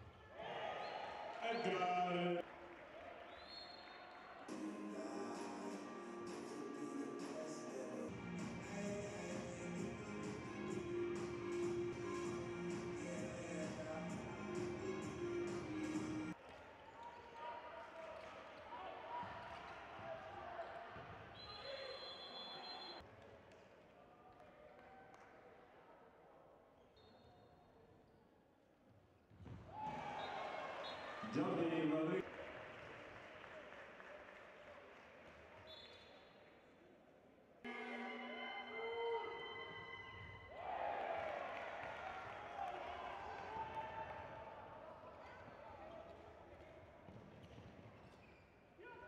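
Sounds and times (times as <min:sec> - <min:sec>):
indoor hall noise: 0:00.0 - 0:26.8, 0:29.4 - 0:49.0
crowd voices: 0:04.5 - 0:16.4, 0:37.7 - 0:40.2
referee's whistle blast: 0:21.4 - 0:23.0
steady held tones: 0:37.7 - 0:40.1
ball bouncing on court: 0:47.0 - 0:48.2.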